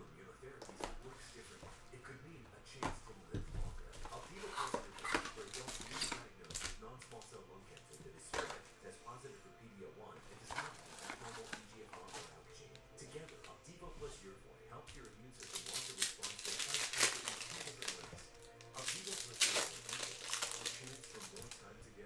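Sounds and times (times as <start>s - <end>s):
foil packs crinkling and scraping: 3.8s - 7.2s, 10.3s - 12.4s, 15.4s - 21.7s.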